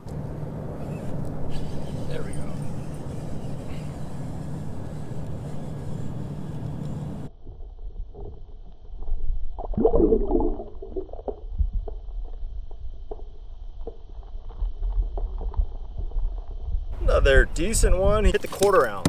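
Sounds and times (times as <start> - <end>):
water around kayak: 0.0 - 17.7
steady low hum: 0.0 - 19.0
muffled underwater sound: 7.5 - 12.2
gurgling knocking water burst: 9.6 - 11.4.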